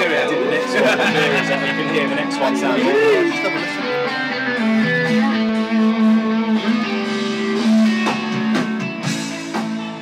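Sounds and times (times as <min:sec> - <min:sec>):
electric guitar sustained notes: 0:00.0 - 0:10.0.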